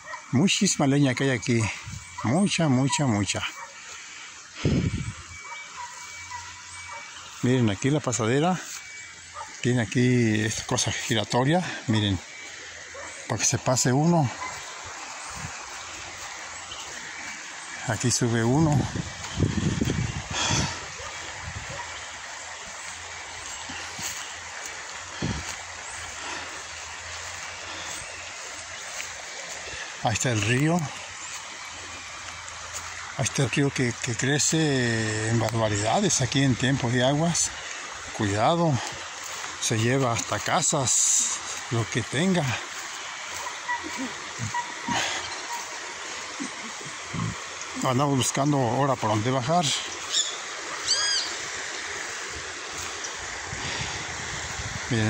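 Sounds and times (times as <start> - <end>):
river water running over rocks: 0.0 - 55.0.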